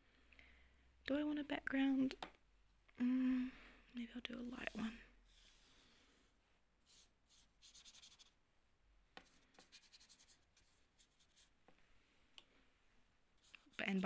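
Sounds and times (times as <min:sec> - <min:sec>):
paintbrush scratching on paper: 0:04.4 - 0:05.8, 0:06.8 - 0:08.4, 0:09.2 - 0:11.6, 0:13.4 - 0:14.0.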